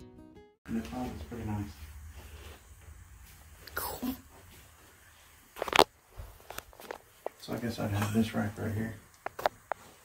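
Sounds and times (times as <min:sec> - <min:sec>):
light clicking footsteps: 0:00.7 - 0:07.8
woman speaking: 0:03.6 - 0:04.3.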